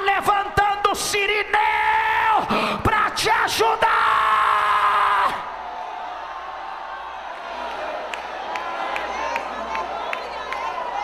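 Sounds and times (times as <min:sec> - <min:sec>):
man shouting through microphone: 0:00.0 - 0:05.4
crowd noise in hall: 0:00.0 - 0:11.0.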